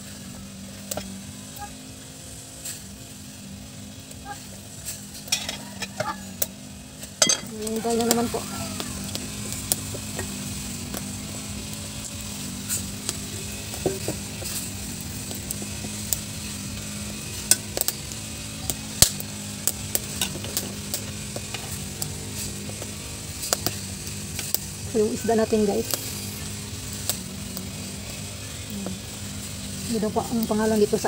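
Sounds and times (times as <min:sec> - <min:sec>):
low steady hum: 0:03.3 - 0:31.0
firewood crackling clicks: 0:08.8 - 0:11.1, 0:11.7 - 0:16.3, 0:17.4 - 0:24.7, 0:25.8 - 0:26.1, 0:26.9 - 0:29.6.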